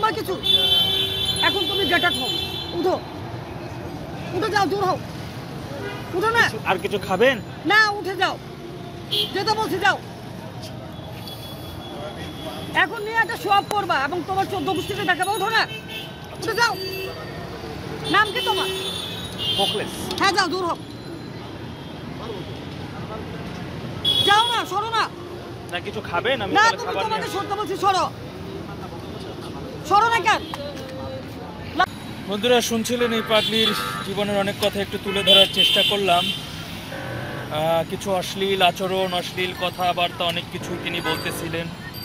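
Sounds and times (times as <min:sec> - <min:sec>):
low hum of street traffic: 0:00.0 - 0:42.0.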